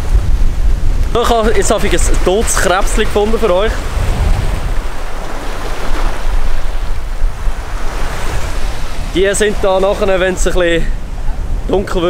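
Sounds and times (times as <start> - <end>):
small waves breaking on beach: 0.0 - 11.8
wind noise on microphone: 0.0 - 12.0.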